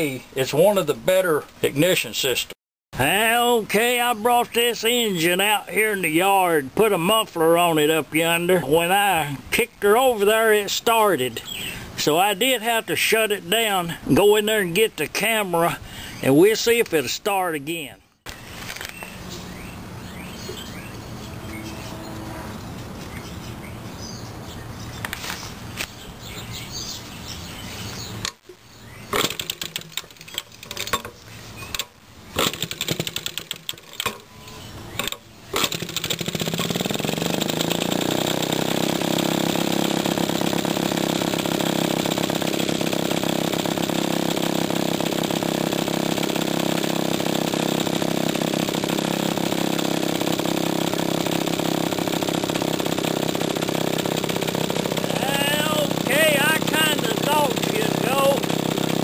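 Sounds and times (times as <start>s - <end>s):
two-stroke engine starting and running: 3.0s - 14.0s, 29.1s - 59.0s
engine pops and sputters: 29.1s - 34.3s, 34.9s - 59.0s.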